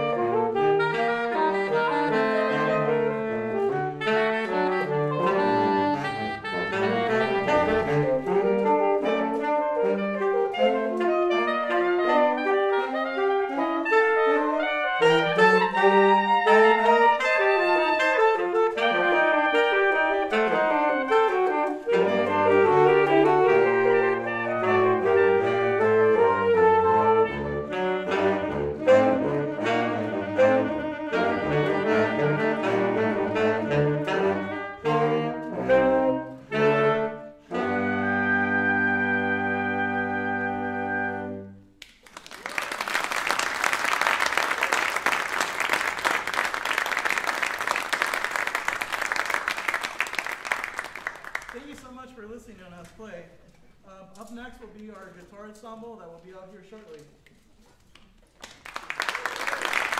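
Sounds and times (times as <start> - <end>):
saxophone quartet playing: 0.0 - 41.8, 42.4 - 51.9, 58.8 - 59.9.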